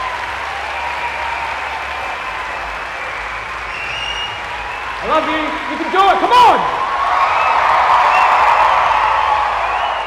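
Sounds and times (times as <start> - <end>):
audience applauding and cheering: 0.0 - 10.0
faint whistles: 2.9 - 5.0, 9.6 - 10.0.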